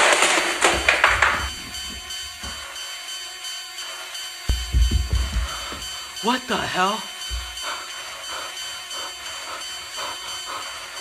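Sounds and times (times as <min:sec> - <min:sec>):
man panting hard: 0:03.8 - 0:11.0.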